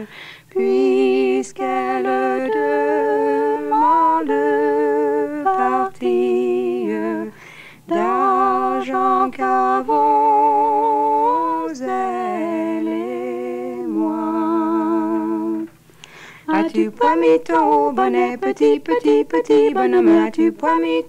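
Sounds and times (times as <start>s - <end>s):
two women singing a folk song: 0.0s - 21.0s.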